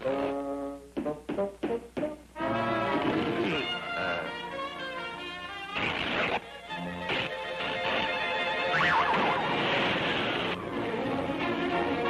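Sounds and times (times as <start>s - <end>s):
cartoon orchestral music: 0.0s - 12.0s.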